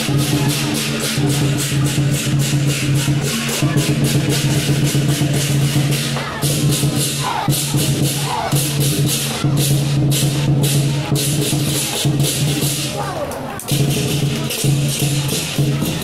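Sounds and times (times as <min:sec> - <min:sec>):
drum and gong ringing: 0:00.0 - 0:13.1, 0:13.7 - 0:16.0.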